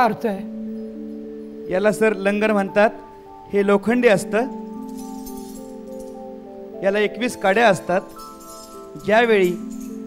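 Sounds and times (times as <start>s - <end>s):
man speaking into a microphone: 1.7s - 4.6s, 6.8s - 8.1s, 9.0s - 9.7s
metal chain clinking: 4.5s - 6.4s, 7.4s - 10.0s.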